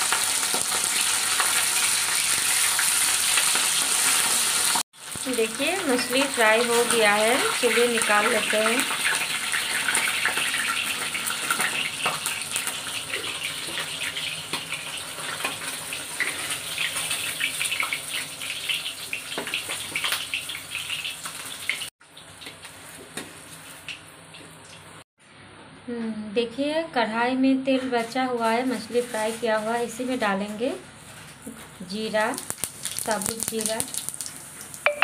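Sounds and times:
fish sizzling in hot oil: 0.0 - 24.0, 32.2 - 34.9.

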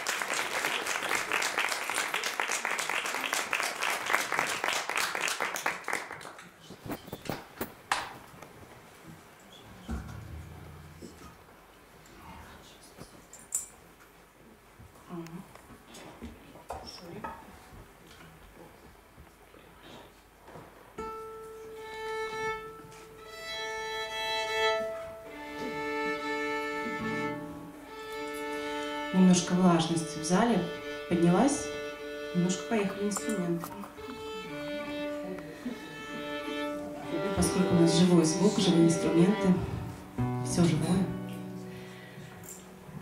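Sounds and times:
guitar plucked string notes: 9.8 - 11.5, 36.6 - 43.0
violin strings bowed in pairs: 21.7 - 41.0.

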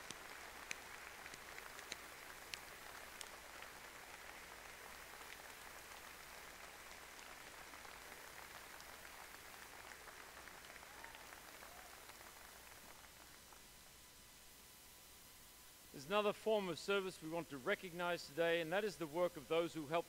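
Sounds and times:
crowd applause: 0.0 - 13.6.

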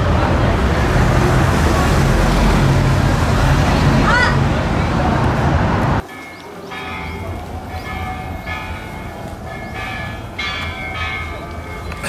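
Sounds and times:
bell-like tones ringing: 6.0 - 12.0.

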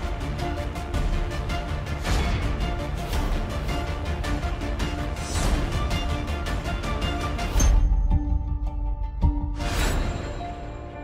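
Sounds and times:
dramatic trailer music: 0.0 - 11.0.

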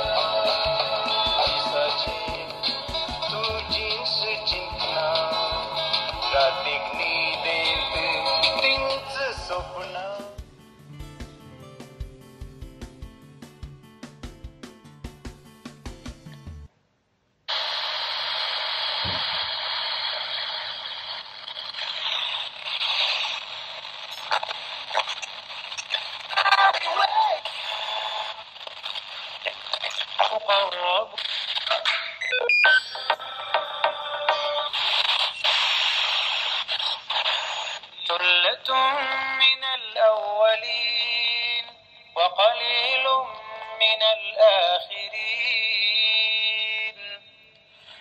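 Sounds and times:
radio static hiss and crackle: 0.0 - 10.4, 17.5 - 42.9
song from small speaker: 0.0 - 12.7, 32.2 - 48.0
radio station voice: 6.2 - 10.4, 24.1 - 28.3, 29.4 - 31.9
radio tuning clicks: 7.0 - 9.8, 17.5 - 38.0.

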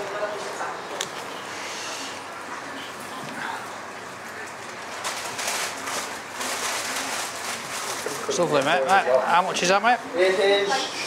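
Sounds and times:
wrapping paper rustling: 4.8 - 9.0.

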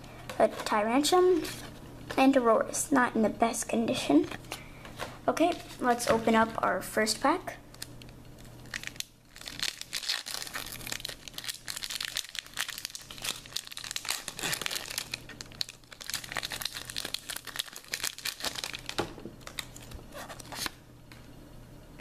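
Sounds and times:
foil wrapper crinkling and tearing: 7.7 - 20.8.

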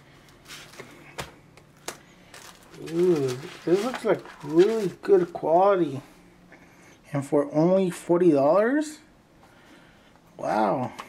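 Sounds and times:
faint fabric and plastic rustling: 0.1 - 5.7.

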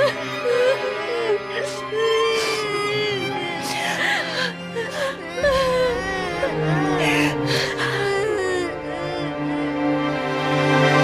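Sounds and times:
background music with held notes: 0.0 - 11.0
young child wailing and crying: 4.9 - 9.6.

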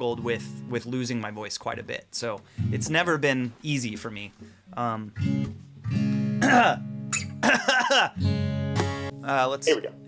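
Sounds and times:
acoustic guitar chords: 0.0 - 1.0, 2.5 - 3.4, 4.3 - 10.0
man's voice: 9.3 - 10.0.

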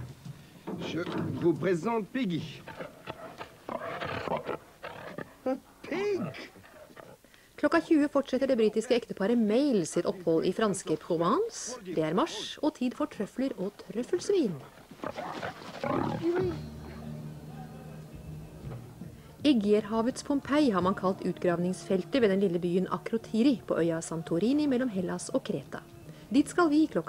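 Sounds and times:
pig grunting: 2.6 - 7.2, 14.5 - 17.0
low held music note: 16.4 - 20.2.

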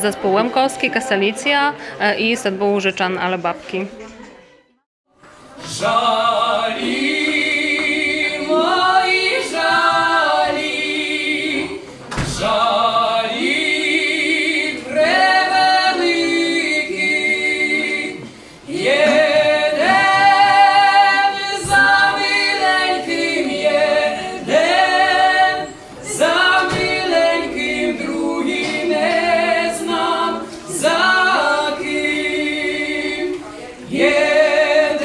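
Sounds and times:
voices singing a cappella in harmony: 0.0 - 2.0, 5.4 - 35.0.

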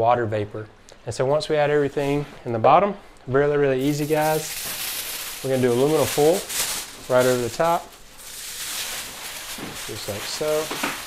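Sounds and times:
aluminium foil crinkling: 3.8 - 11.0.

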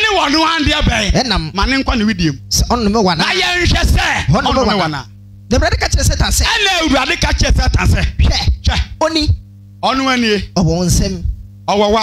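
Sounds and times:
man preaching through loudspeakers: 0.0 - 12.0
steady low hum: 0.0 - 12.0.

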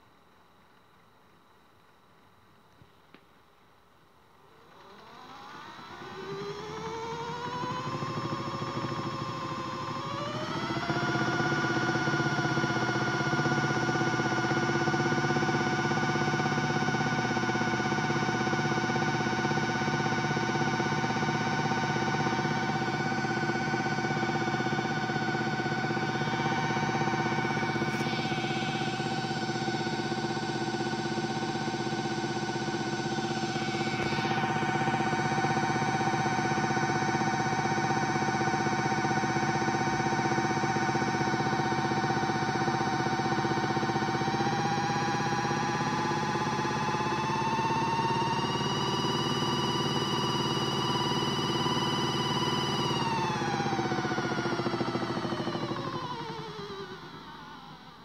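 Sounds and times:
toy washing machine motor whining: 4.6 - 57.8.

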